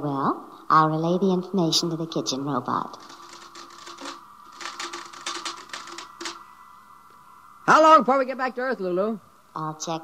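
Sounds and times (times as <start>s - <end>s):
steady electronic hum: 2.7s - 10.0s
rapid typewriter-like clicking: 2.9s - 6.5s.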